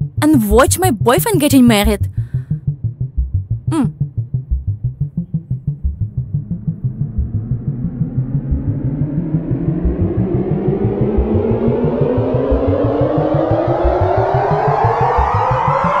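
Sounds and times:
fast low drum pulse: 1.8 - 12.8.

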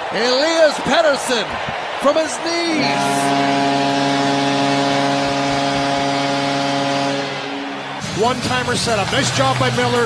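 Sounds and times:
crowd noise: 0.0 - 10.0
arena goal horn: 2.7 - 8.4.

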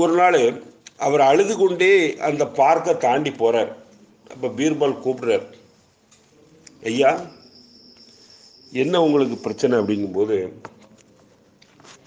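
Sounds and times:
man speaking: 0.0 - 5.6, 6.8 - 7.4, 8.7 - 10.6
thin high whine: 4.0 - 10.6.

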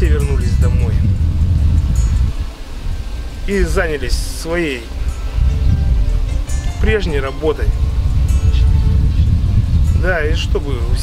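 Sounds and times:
loud low rumble: 0.0 - 11.0.

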